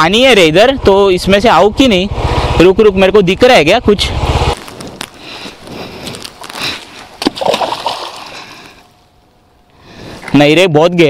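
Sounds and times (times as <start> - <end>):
rock splashing into water: 7.2 - 8.4.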